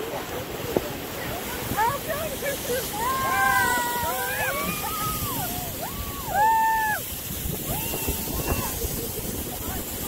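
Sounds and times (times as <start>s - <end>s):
steady rushing noise: 0.0s - 10.0s
person whooping: 3.0s - 8.9s.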